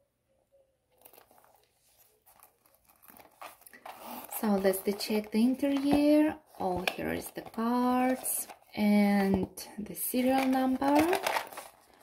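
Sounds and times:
bag rustling in hands: 0:00.9 - 0:06.7.

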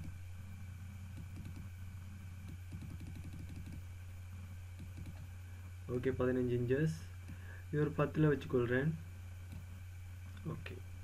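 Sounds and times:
steady low hum: 0:00.0 - 0:11.0
computer keyboard taps: 0:02.5 - 0:03.8.

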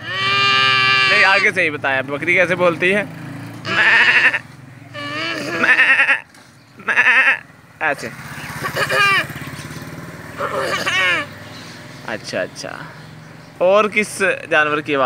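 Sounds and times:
child imitating goat bleats: 0:00.0 - 0:01.5, 0:03.7 - 0:07.5, 0:08.7 - 0:09.3, 0:10.4 - 0:11.3
motorcycle engine humming: 0:00.0 - 0:15.0.

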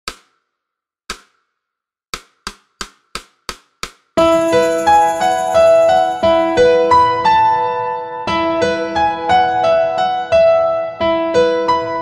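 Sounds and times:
sharp percussive hits: 0:02.2 - 0:06.6.

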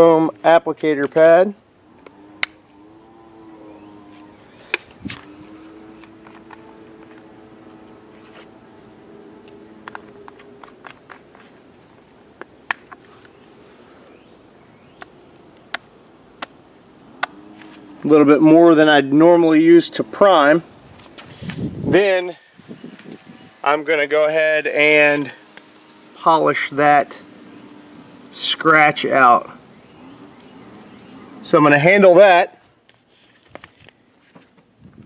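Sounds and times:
steady pitched hum: 0:00.0 - 0:32.8.

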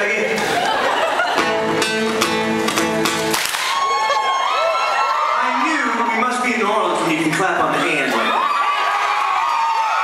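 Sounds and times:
crowd whooping and cheering: 0:00.4 - 0:01.6, 0:03.3 - 0:06.6, 0:07.7 - 0:10.0
guitars strumming chords: 0:01.3 - 0:03.7.

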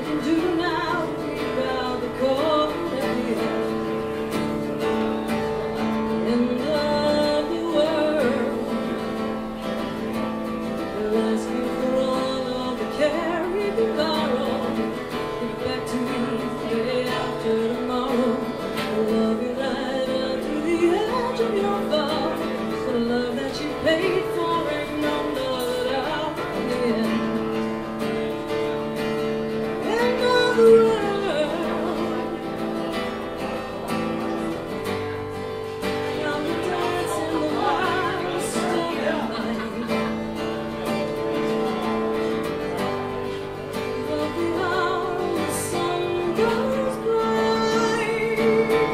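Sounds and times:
person singing: 0:00.0 - 0:04.2, 0:06.0 - 0:27.7, 0:35.8 - 0:41.1, 0:43.9 - 0:48.9
acoustic guitar chords: 0:00.0 - 0:48.9.

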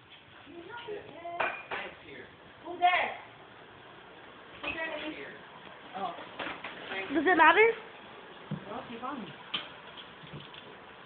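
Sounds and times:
kitchenware clinking: 0:01.4 - 0:02.0.

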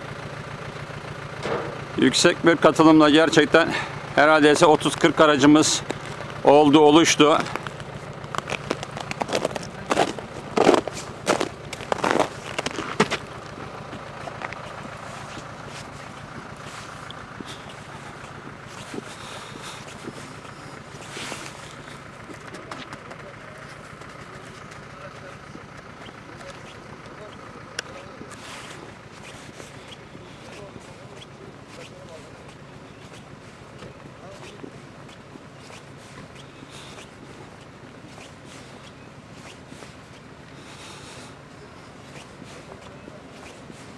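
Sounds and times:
vehicle moving along road: 0:00.0 - 0:43.9.

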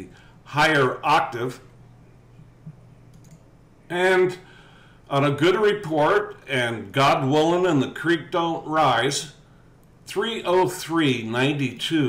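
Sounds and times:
man speaking: 0:00.0 - 0:01.7, 0:03.9 - 0:04.5, 0:05.1 - 0:09.4, 0:10.1 - 0:12.0
low steady hum: 0:00.0 - 0:12.0
computer mouse click: 0:02.6 - 0:03.5.

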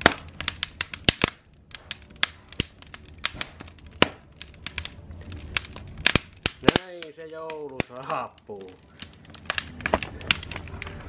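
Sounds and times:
wood fire crackling and popping: 0:00.0 - 0:11.0.

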